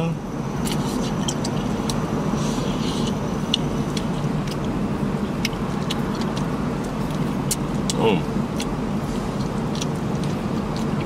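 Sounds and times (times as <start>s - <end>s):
car idling rumble: 0.0s - 11.0s
chewing clicks: 0.6s - 2.0s, 3.0s - 8.8s, 9.4s - 11.0s.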